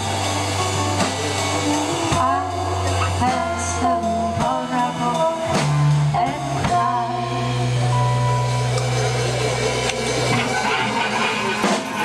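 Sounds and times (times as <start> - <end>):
live band playing: 0.0 - 12.0
drum hit: 10.3 - 12.0.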